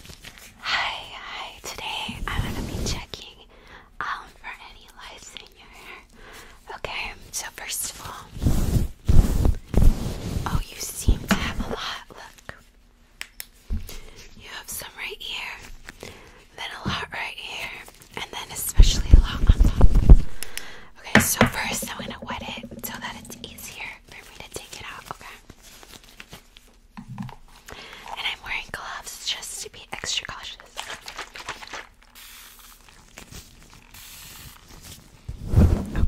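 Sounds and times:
person whispering: 0:21.0 - 0:25.4.

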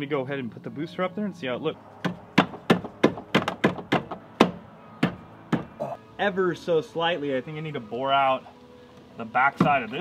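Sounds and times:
sharp metal knocks and clunks: 0:02.0 - 0:05.8.

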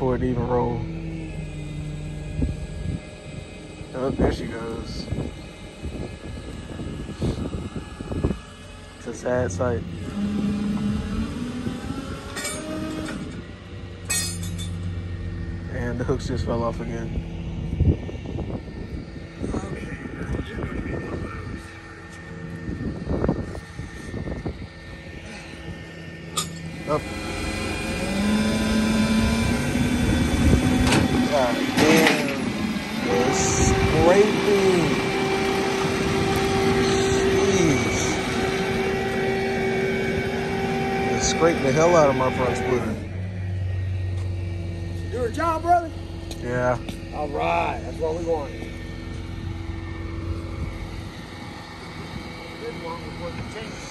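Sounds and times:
truck engine running: 0:00.0 - 0:53.9
winch drive whining: 0:00.0 - 0:53.9
high metallic squeals of winch cable: 0:08.4 - 0:13.5, 0:31.3 - 0:43.2.

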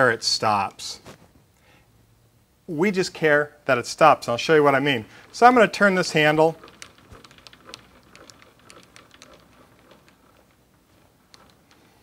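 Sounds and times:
lathe feed handle clicking: 0:05.2 - 0:12.0.

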